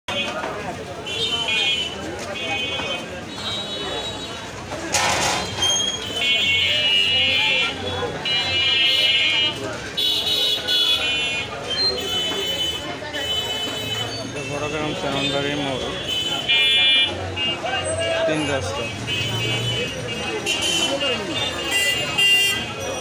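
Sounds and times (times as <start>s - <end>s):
crowd chatter: 0.1s - 23.0s
traffic: 0.1s - 23.0s
high-pitched electric horns beeping: 5.1s - 23.0s.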